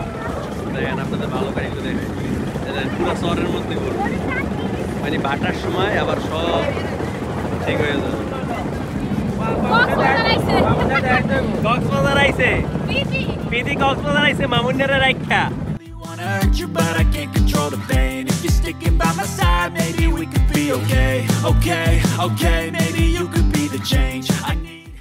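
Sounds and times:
voices: 0.0s - 15.6s
wind buffeting microphone: 0.0s - 15.8s
boat engine running: 0.0s - 24.7s.

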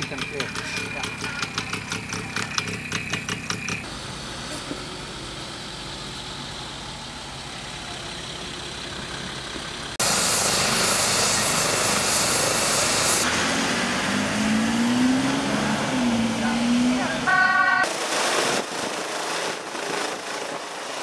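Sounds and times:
vehicle engine pulling away: 0.0s - 17.3s
faint vehicle engine running: 0.0s - 21.0s
helicopter turbine and rotor: 0.0s - 21.0s.

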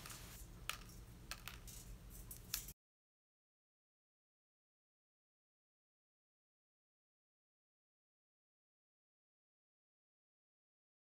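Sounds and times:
quills clicking on metal bowl: 0.0s - 2.8s.

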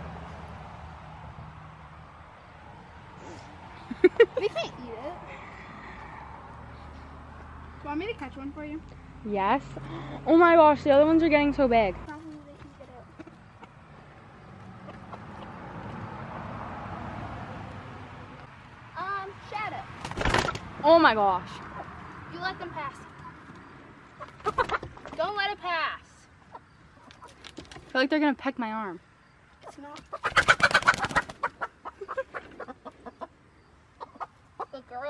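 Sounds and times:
vehicle passing: 0.0s - 35.0s
hens calling: 23.2s - 25.2s, 29.6s - 34.9s
hen squawking: 30.1s - 33.4s.

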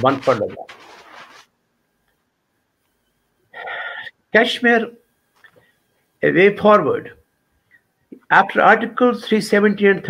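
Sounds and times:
faint noisy hiss: 0.0s - 10.0s.

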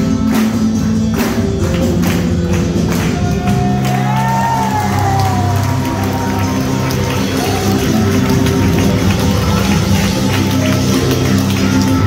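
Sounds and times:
worship music: 0.0s - 12.0s.

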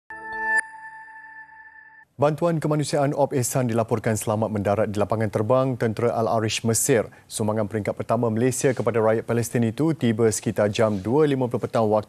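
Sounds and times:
high ringing tone: 0.1s - 2.0s.

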